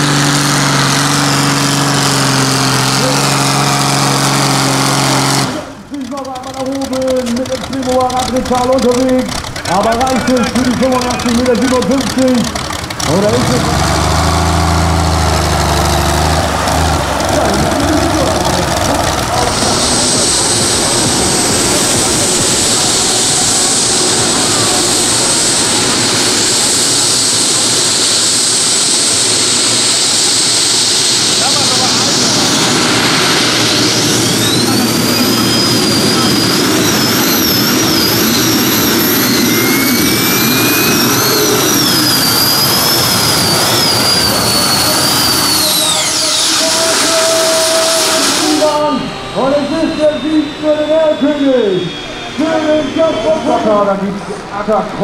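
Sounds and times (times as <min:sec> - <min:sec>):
gas turbine engine whine: 0:00.0 - 0:55.0.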